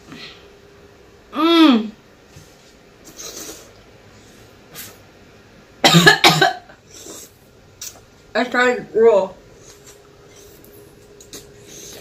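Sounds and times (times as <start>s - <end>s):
woman coughing: 5.8s - 6.8s.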